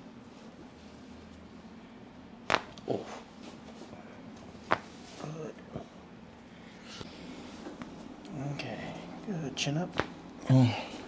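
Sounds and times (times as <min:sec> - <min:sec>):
neck joint cracking: 0:02.5 - 0:03.0.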